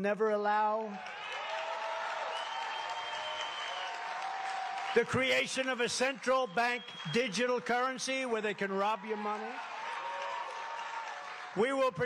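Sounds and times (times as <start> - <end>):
crowd applauding and cheering: 0.9 - 12.0
held calls from crowd: 1.0 - 12.0.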